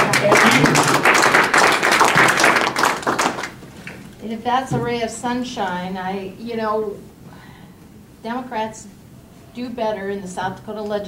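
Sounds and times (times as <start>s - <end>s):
people applauding: 0.0s - 4.1s.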